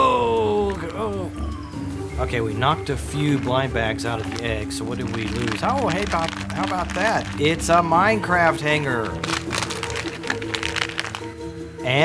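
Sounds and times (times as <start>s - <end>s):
background music: 0.0s - 12.0s
plastic wrapper crinkling: 3.1s - 11.4s.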